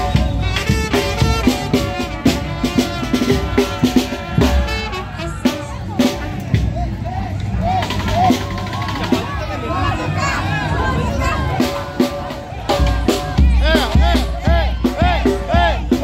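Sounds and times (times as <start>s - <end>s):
drum beating sharp strokes: 0.0s - 6.8s, 11.4s - 16.0s
crowd voices: 0.0s - 16.0s.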